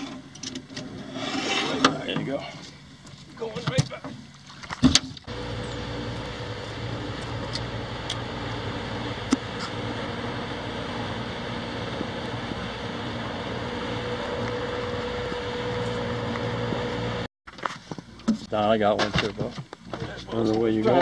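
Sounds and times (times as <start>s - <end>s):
boat engine drone: 5.2s - 17.3s.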